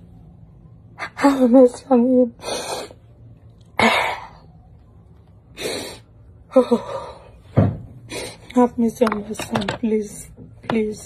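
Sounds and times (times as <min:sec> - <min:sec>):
woman sobbing: 0:05.8 - 0:07.3.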